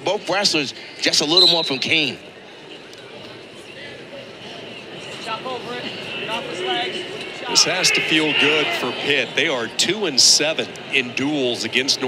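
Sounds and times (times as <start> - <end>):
crowd noise: 0.0 - 12.0
voices calling out: 6.0 - 9.7.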